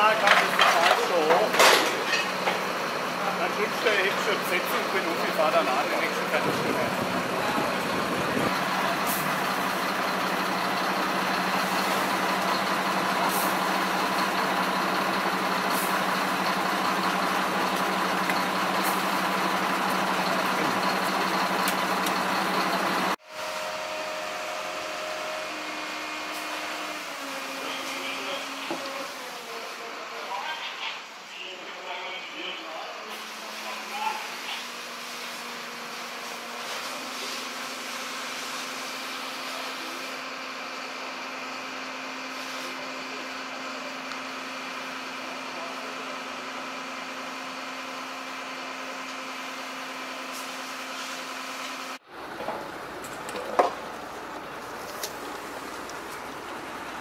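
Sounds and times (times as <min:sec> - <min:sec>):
fire engine pump humming: 0:00.0 - 0:57.0.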